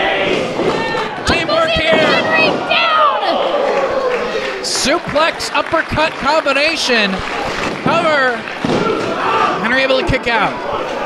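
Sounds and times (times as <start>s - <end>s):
people shouting: 0.0s - 4.7s, 7.8s - 11.0s.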